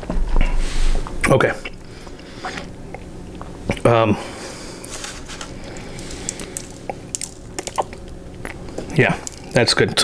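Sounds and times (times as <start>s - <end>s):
wet chewing with crunches: 4.8s - 9.6s.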